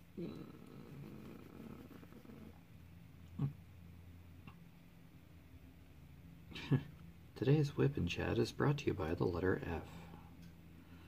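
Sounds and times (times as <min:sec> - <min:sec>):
man chuckling softly: 0:06.5 - 0:07.0.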